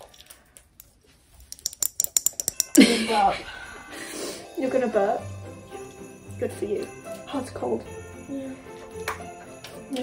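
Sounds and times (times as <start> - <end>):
person laughing: 2.6 - 3.6.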